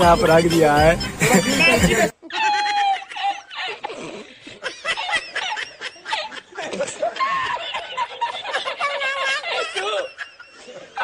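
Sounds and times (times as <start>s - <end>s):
man speaking: 0.0s - 1.1s
man laughing hard: 0.3s - 11.0s.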